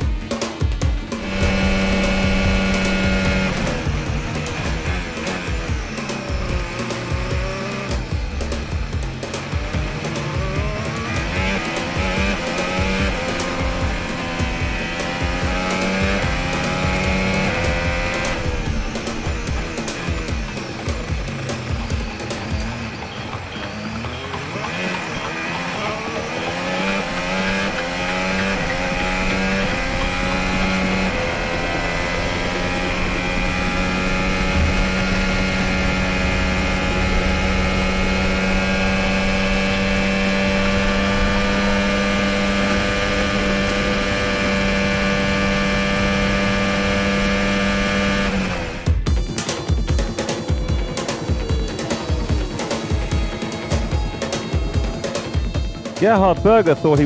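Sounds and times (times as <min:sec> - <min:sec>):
racing car engine revving: 0:00.0 - 0:57.0.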